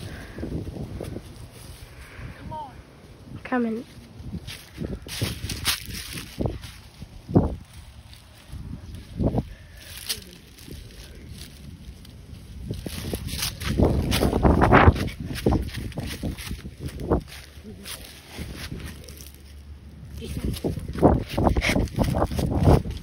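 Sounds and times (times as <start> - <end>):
rustling: 3.8 - 23.0.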